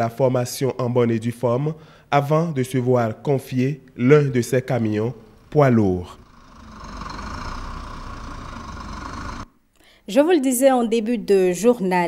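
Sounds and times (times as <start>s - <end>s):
diesel engine idling: 5.2s - 9.5s.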